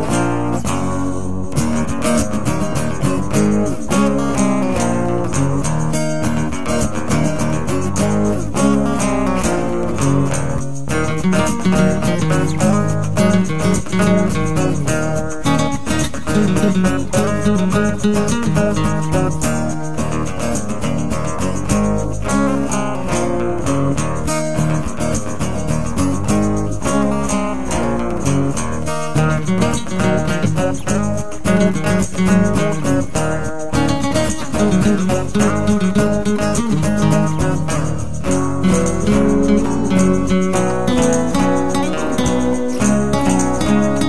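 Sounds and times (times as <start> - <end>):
acoustic guitar music: 0.0 - 44.0.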